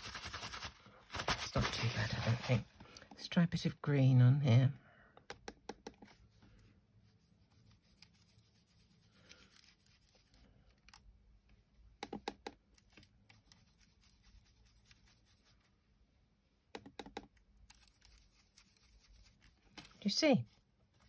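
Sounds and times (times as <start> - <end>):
soft brush rubbing on card: 0.0 - 2.7, 6.1 - 10.5, 12.9 - 15.8, 17.7 - 21.0.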